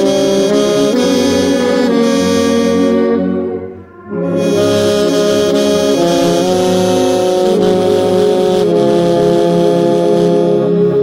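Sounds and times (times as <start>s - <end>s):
brass and woodwind orchestra: 0.0s - 11.0s.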